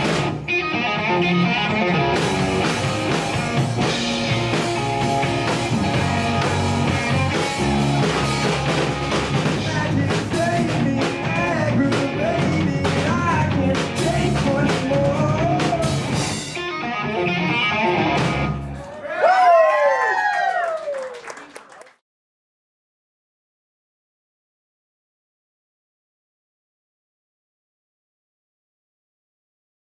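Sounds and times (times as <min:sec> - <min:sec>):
electric guitar: 0:00.0 - 0:19.0
drums: 0:00.0 - 0:19.7
bass: 0:00.0 - 0:20.4
gliding guitar notes: 0:00.4 - 0:08.0.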